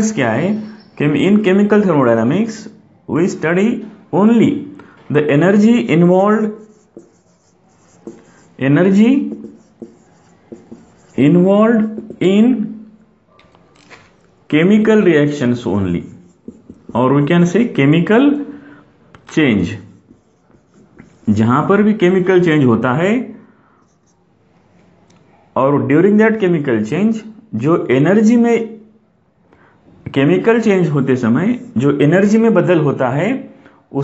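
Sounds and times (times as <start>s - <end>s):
man speaking: 0.0s - 7.2s, 8.2s - 12.9s, 14.5s - 18.5s, 19.3s - 20.3s, 21.0s - 23.4s
marker writing on whiteboard: 5.3s - 18.1s, 19.2s - 22.6s, 23.8s - 24.3s, 31.4s - 32.0s.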